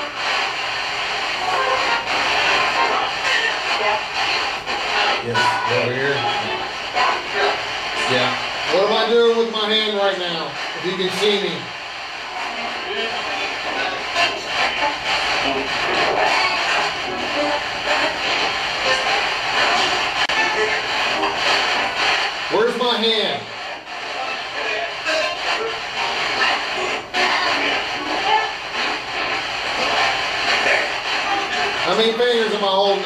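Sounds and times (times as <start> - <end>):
radio static sweeping: 0.0 - 33.0
snatches of broadcast music: 0.0 - 33.0
snatches of broadcast voices: 0.0 - 33.0.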